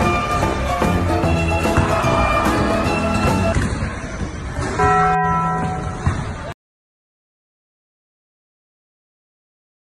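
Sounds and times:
bell chime ringing: 4.8 - 6.1.

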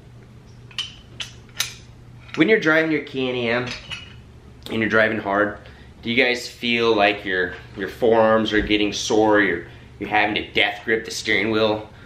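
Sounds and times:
steady low hum: 0.0 - 12.0
metal parts clicking together: 0.7 - 2.4.

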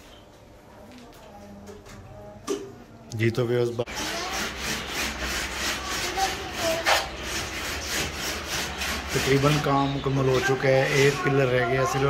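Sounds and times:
hand rubbing plaster wall: 3.9 - 12.0.

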